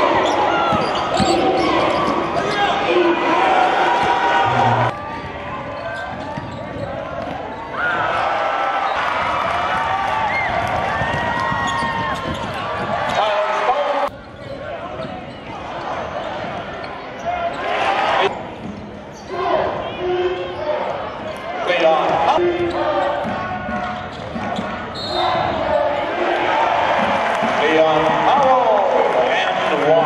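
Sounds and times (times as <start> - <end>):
players and crowd voices: 0.0 - 30.0.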